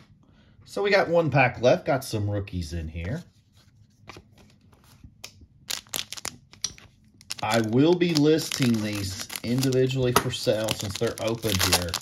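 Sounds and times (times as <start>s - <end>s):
foil pack crinkling: 5.6s - 12.0s.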